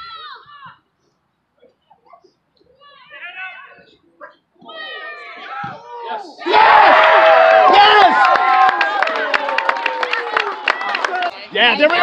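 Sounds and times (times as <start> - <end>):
spectators shouting and cheering: 4.6 - 12.0
scattered clapping: 7.4 - 12.0.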